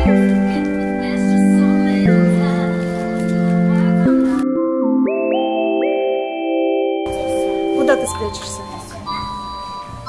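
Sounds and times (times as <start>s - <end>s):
electronic chime tones: 3.3s - 10.0s.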